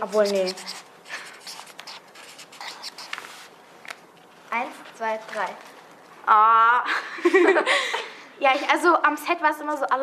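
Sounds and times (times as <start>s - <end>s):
pens scratching on paper: 0.0s - 3.5s.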